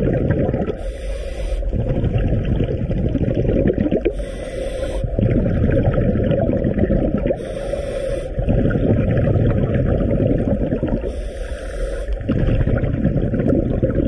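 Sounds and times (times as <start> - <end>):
rumble of exhaled bubbles: 0.0 - 0.8, 1.6 - 7.6, 8.3 - 11.2, 12.0 - 14.0
regulator hissing inhalations: 0.8 - 1.8, 4.0 - 5.2, 7.3 - 8.5, 11.0 - 12.3.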